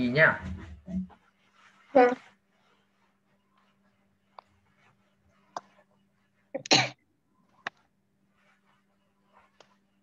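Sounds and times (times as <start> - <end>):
person coughing: 6.6 - 7.0.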